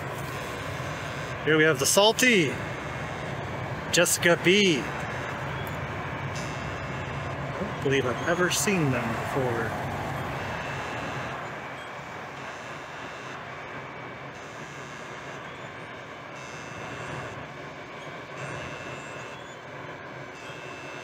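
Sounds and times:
large machinery rumbling: 0:00.0 - 0:21.0.

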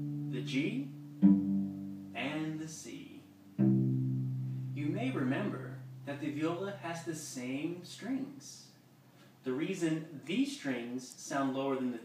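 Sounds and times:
person speaking: 0:00.0 - 0:01.1, 0:02.1 - 0:03.5, 0:04.7 - 0:08.8, 0:09.4 - 0:12.0
cello strings plucked: 0:00.0 - 0:06.5.

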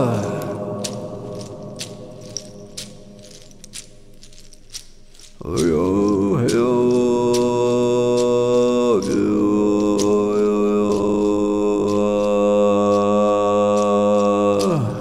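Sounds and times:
voice chanting long notes: 0:00.0 - 0:04.5, 0:05.4 - 0:15.0.

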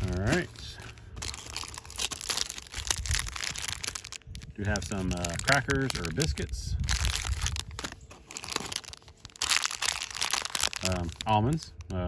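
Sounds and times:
plastic wrappers crinkling: 0:00.0 - 0:12.0.

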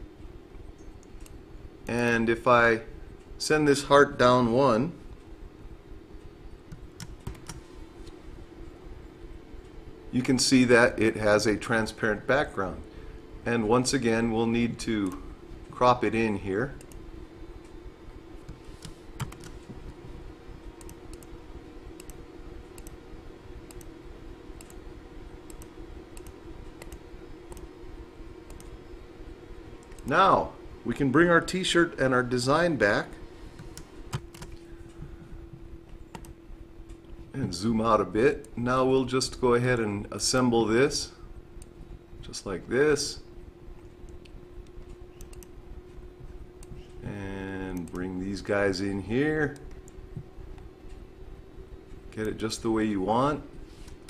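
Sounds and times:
low room noise: 0:00.0 - 0:54.0
steady low hum: 0:00.0 - 0:54.0
computer mouse click: 0:06.7 - 0:07.6, 0:18.4 - 0:20.0, 0:20.8 - 0:21.3, 0:22.0 - 0:22.2, 0:22.8 - 0:23.0, 0:24.6 - 0:24.8, 0:25.5 - 0:27.7, 0:33.6 - 0:34.6, 0:44.2 - 0:45.5.

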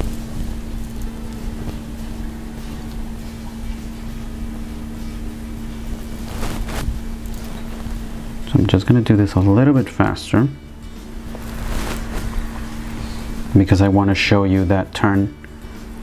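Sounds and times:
steady low hum: 0:00.0 - 0:16.0
low rumble: 0:10.5 - 0:14.0.

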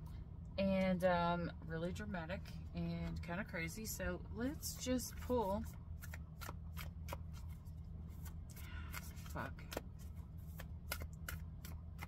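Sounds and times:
cards being shuffled: 0:05.0 - 0:12.0.

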